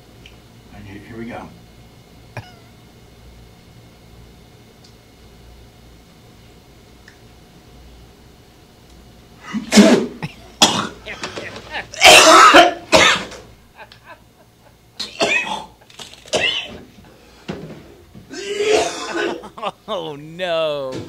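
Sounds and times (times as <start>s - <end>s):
man coughing hard: 2.3s - 2.7s, 9.5s - 13.4s, 15.0s - 16.9s, 18.3s - 20.3s
spluttering and throat clearing: 2.3s - 2.8s, 9.4s - 14.0s, 15.0s - 16.9s, 18.3s - 20.2s.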